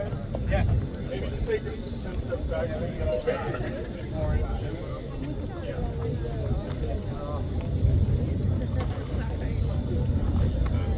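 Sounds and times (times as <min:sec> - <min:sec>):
people chattering: 0:00.0 - 0:10.9
heavy low rumble: 0:05.6 - 0:10.9.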